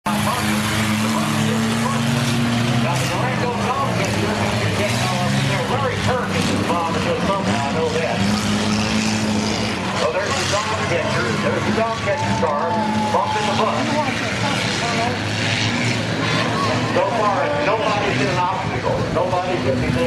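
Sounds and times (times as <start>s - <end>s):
race car engines running: 0.0s - 20.0s.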